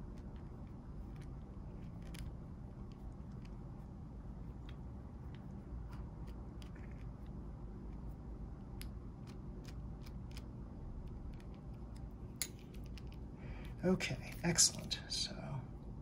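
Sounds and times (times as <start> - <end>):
low steady hum: 0.0 - 16.0
light clicks of small parts: 4.6 - 15.0.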